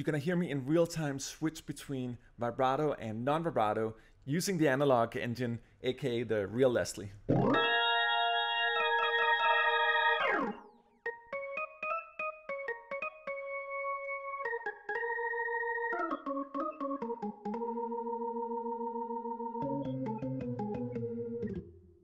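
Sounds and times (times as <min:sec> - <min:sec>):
organ through rotating speaker: 0:07.3 - 0:21.7.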